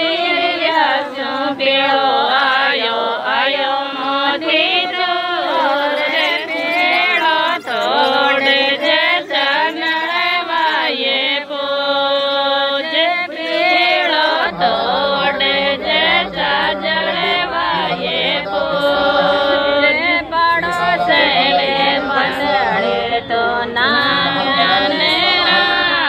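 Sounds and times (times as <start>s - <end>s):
person singing devotional chant: 0.0s - 26.0s.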